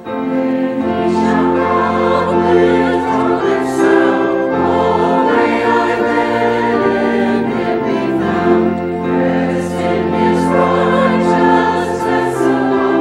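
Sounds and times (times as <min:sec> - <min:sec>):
choir and congregation singing hymn: 0:00.0 - 0:13.0
held low accompaniment notes: 0:00.0 - 0:13.0.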